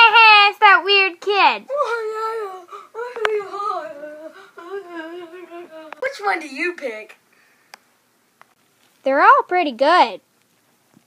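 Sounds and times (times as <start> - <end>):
boy humming whinily: 1.7 - 6.0.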